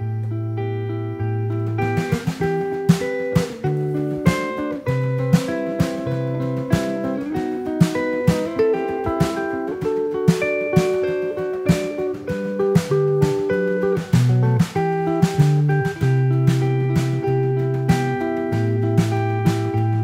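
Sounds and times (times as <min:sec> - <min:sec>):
electric guitar melody: 0:00.0 - 0:20.0
snare drum played with brush: 0:01.7 - 0:20.0.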